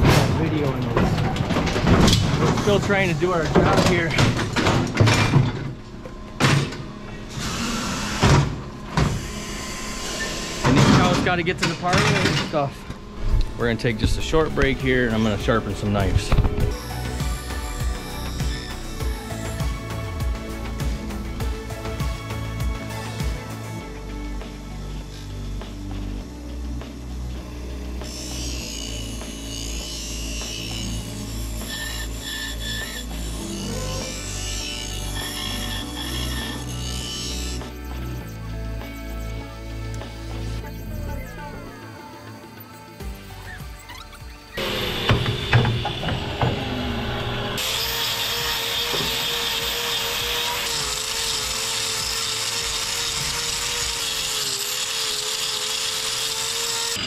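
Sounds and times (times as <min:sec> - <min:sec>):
background music: 0:00.0 - 0:57.0
bench grinder running: 0:13.0 - 0:57.0.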